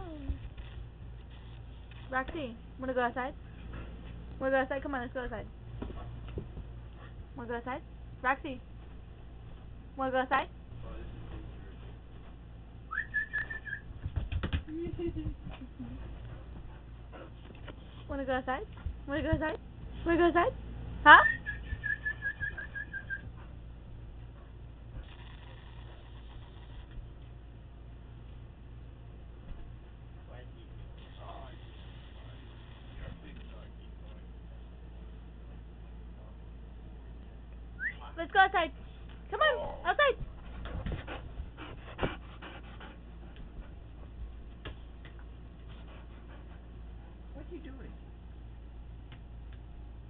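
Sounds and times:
dog panting: 5.9s - 7.4s, 15.4s - 19.4s, 39.7s - 47.4s.

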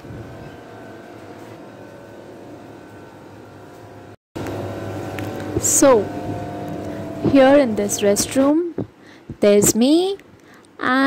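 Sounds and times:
air conditioners humming: 0.0s - 11.0s.

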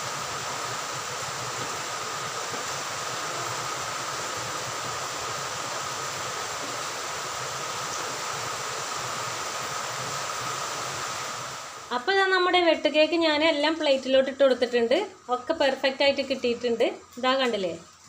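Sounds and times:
dough deep-frying in oil: 0.0s - 18.0s.

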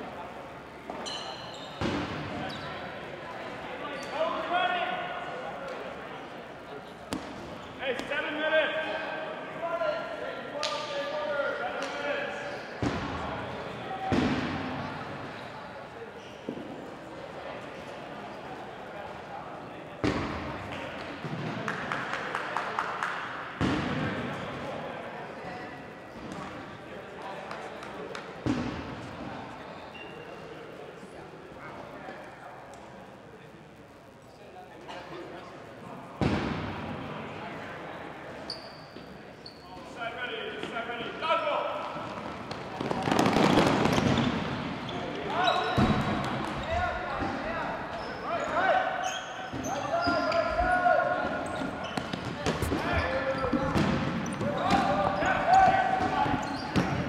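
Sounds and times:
voices calling out in a gym: 0.0s - 57.0s
dodgeballs bouncing on wooden floor: 42.0s - 44.6s, 51.2s - 57.0s.

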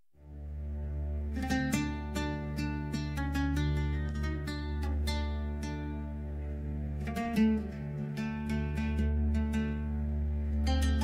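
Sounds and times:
low steady drone: 0.2s - 11.0s
plucked guitar notes: 0.5s - 11.0s.

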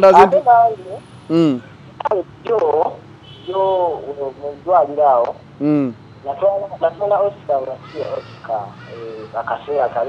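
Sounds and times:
voice talking over phone speaker: 0.0s - 10.0s.

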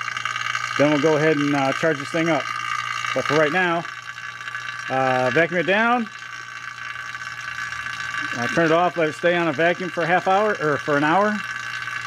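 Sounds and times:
vacuum pump humming with high whine: 0.0s - 12.0s.

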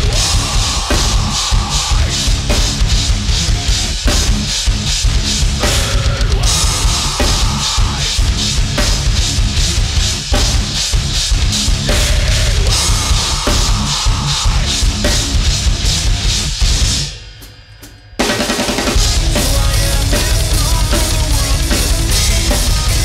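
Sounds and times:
distorted guitar riff: 0.0s - 17.1s, 18.7s - 23.0s
fast bass drum strokes: 0.0s - 17.2s, 18.2s - 23.0s.

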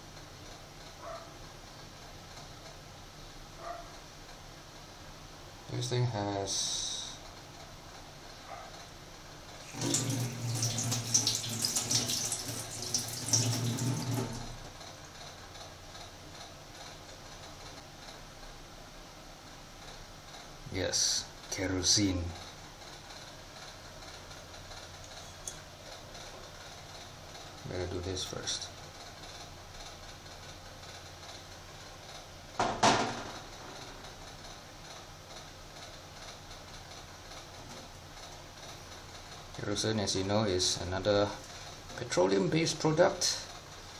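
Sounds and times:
water running into steel sink: 9.6s - 14.6s.

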